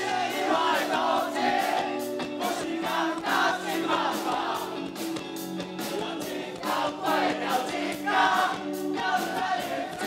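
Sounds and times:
bass guitar: 0:00.0 - 0:10.0
drumbeat with cymbals: 0:00.0 - 0:10.0
electric guitars: 0:00.0 - 0:10.0.

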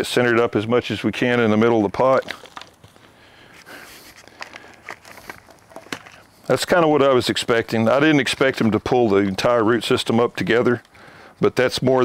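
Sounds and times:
rustling potting soil: 0:00.0 - 0:12.0
plastic pots clicking: 0:01.6 - 0:06.8.

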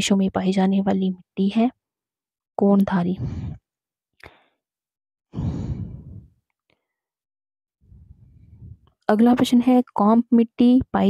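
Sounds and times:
noisy breath exhale: 0:03.2 - 0:03.6, 0:05.4 - 0:06.4
faint breath intake: 0:05.4 - 0:06.3.

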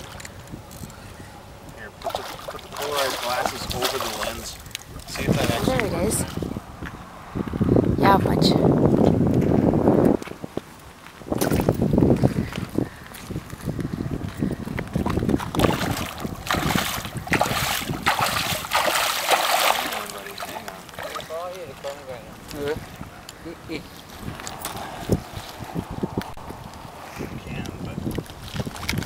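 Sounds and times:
wind buffeting microphone: 0:00.0 - 0:29.0
fish thrashing and splashing: 0:02.0 - 0:05.6, 0:14.9 - 0:21.8.

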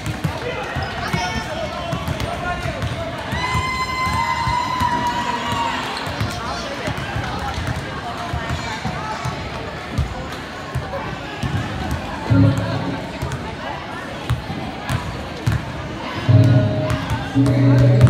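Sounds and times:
voices echoing in gym: 0:00.0 - 0:18.0.

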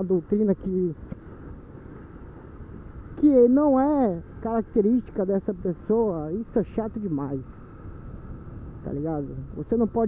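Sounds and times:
motorcycle engine rumble: 0:00.0 - 0:10.0
road noise: 0:00.0 - 0:10.0
wind on microphone: 0:06.8 - 0:10.0.

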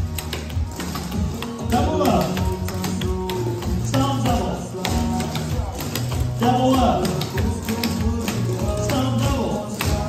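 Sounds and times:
recorded dance music: 0:00.0 - 0:10.0.

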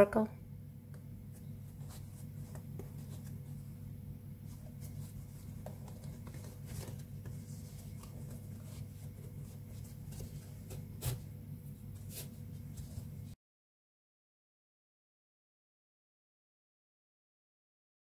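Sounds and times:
steady low hum: 0:00.0 - 0:13.4
hands rustling yarn: 0:04.4 - 0:11.2.

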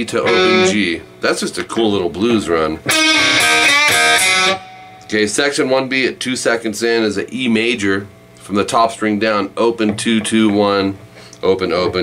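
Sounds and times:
electric guitar blues run: 0:00.0 - 0:01.0, 0:02.8 - 0:05.0.

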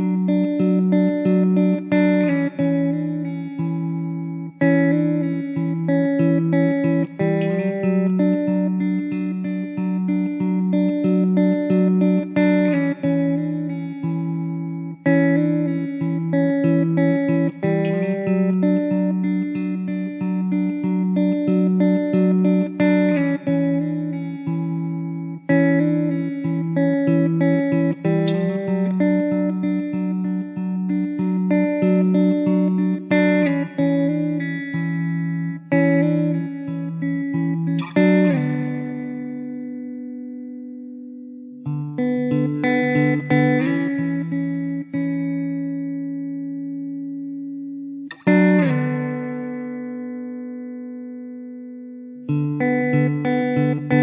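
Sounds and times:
solo guitar instrumental: 0:00.0 - 0:54.0.

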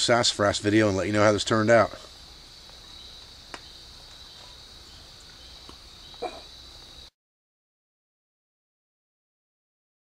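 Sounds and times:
insects chirring: 0:00.0 - 0:07.1.

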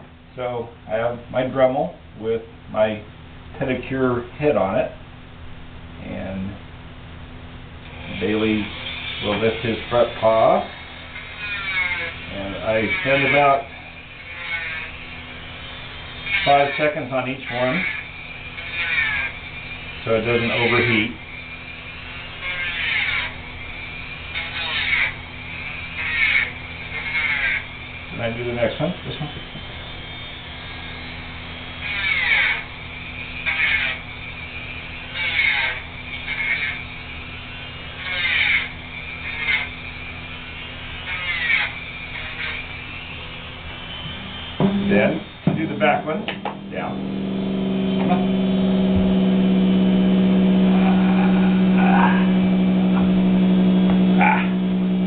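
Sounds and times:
rotary tool grinding toenail: 0:07.9 - 0:55.0.

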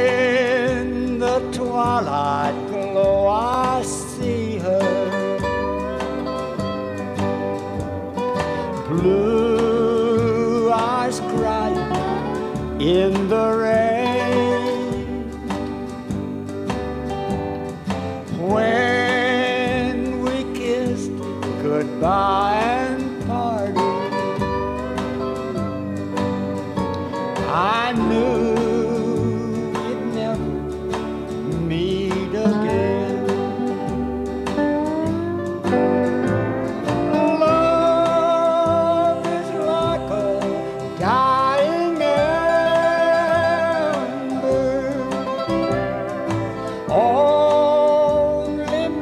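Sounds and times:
country song accompaniment: 0:00.0 - 0:49.0
slide guitar playing: 0:00.0 - 0:49.0.

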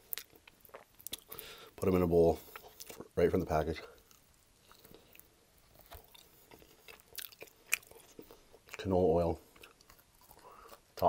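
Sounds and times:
mouth biting and chewing: 0:04.0 - 0:08.8.

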